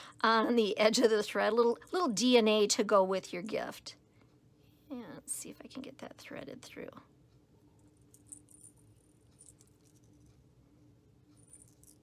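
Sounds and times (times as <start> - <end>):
low room hum: 0.0 - 12.0
small jingle bell tinkles: 7.8 - 10.3, 11.4 - 12.0.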